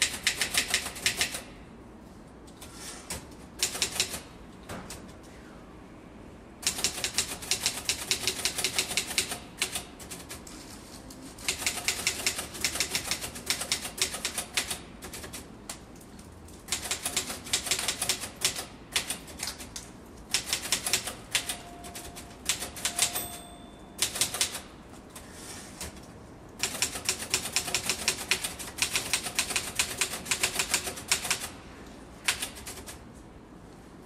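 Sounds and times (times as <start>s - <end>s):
rapid typing on keys: 6.6s - 10.4s, 11.4s - 15.5s, 16.7s - 19.7s, 20.3s - 23.3s, 24.0s - 24.7s, 26.6s - 31.5s, 32.3s - 33.0s.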